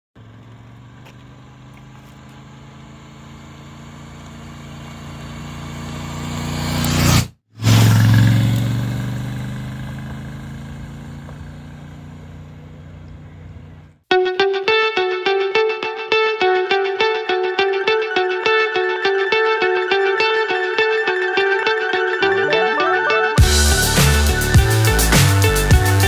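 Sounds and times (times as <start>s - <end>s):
motorcycle engine riding past: 0.2s - 14.0s.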